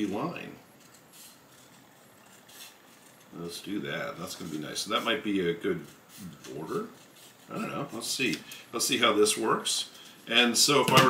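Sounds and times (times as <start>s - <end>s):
scissors cutting paper: 0.7s - 3.3s.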